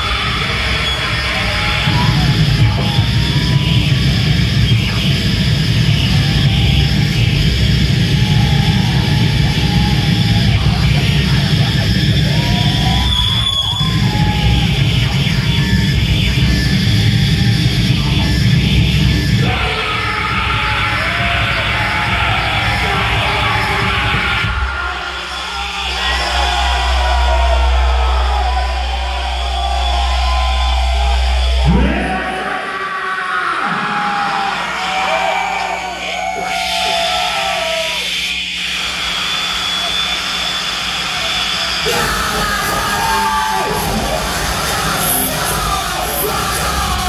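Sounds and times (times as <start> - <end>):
distorted electronic noise: 0.0 - 32.6, 33.8 - 47.0
heavy low drone: 20.3 - 32.6
shrieking vocals: 41.1 - 47.0.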